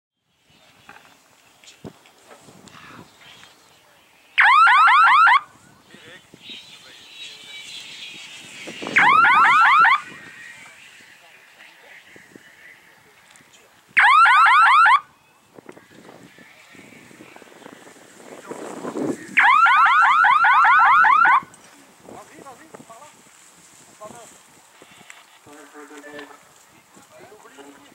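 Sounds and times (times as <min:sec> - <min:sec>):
electronic horn rising chirps: 0:06.8 - 0:10.3
electronic warble of rising chirps: 0:08.8 - 0:10.2.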